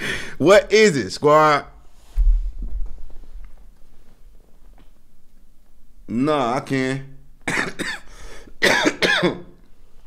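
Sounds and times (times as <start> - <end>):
man coughing: 7.5 - 9.6.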